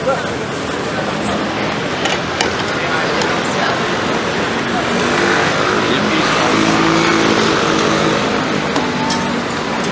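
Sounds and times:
busy street noise: 0.0s - 9.9s.

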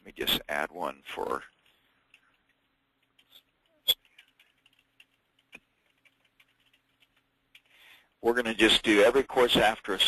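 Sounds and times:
keyboard typing: 1.5s - 8.2s.

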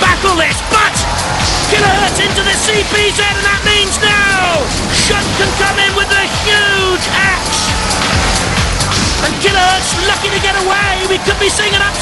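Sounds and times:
background music: 0.0s - 12.0s
voices shouting: 0.0s - 12.0s.

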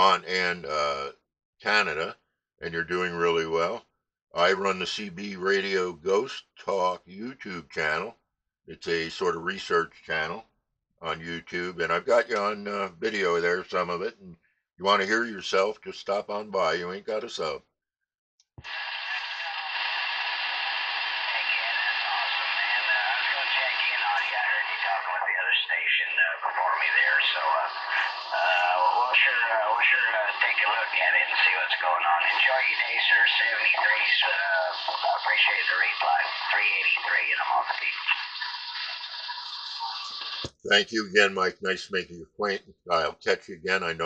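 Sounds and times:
faint radio voice: 0.0s - 3.8s, 4.4s - 8.1s, 8.7s - 10.4s, 11.0s - 17.6s, 21.1s - 44.0s
radio static hiss: 18.6s - 41.8s
radio click: 21.2s - 40.6s.

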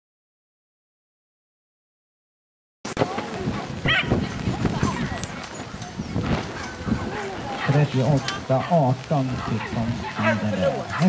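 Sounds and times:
small dog barking: 3.9s - 4.2s, 9.4s - 11.0s.

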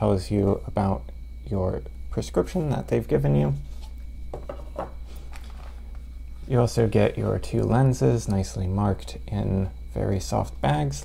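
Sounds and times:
steady low hum: 0.0s - 11.0s
soft paper and plastic rustles: 5.0s - 6.0s.

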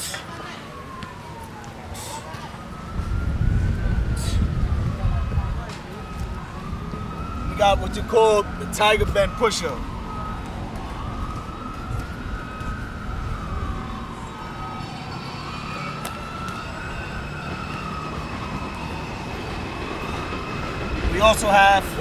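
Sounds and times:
siren wailing: 0.0s - 22.0s.

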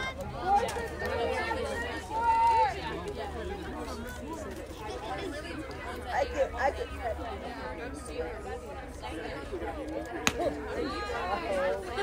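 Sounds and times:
players calling out and chattering: 0.0s - 12.0s.

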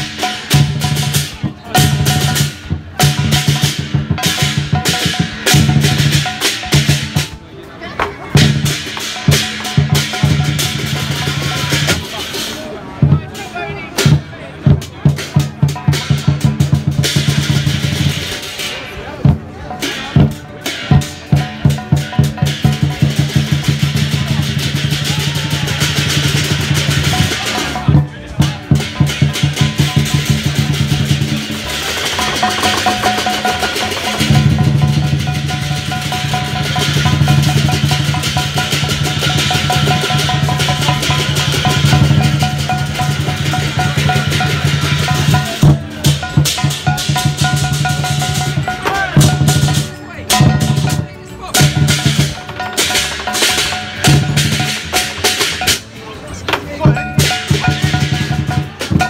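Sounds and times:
cymbals clashing: 0.0s - 7.5s, 8.3s - 59.0s
large drum beating: 0.0s - 7.5s, 8.1s - 59.0s.

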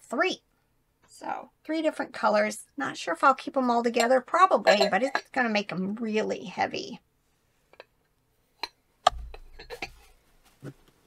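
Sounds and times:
bowls clinking and clattering: 3.7s - 5.6s, 8.6s - 10.2s
stoneware bowls clicking: 4.0s - 5.4s, 8.6s - 10.1s.

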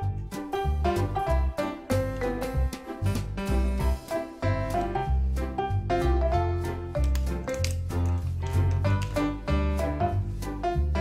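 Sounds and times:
upbeat jazzy music: 0.0s - 11.0s.

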